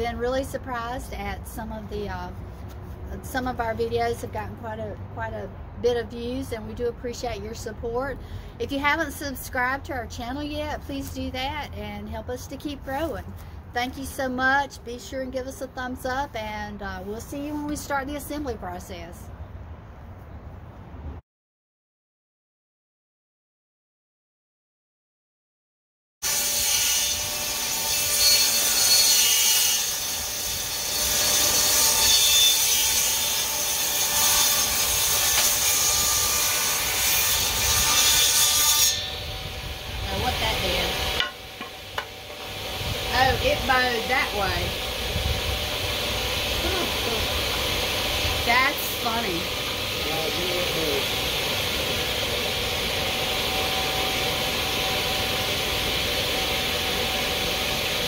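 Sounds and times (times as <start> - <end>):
table saw cutting wood: 26.2 - 58.0
table saw running without load: 38.9 - 58.0.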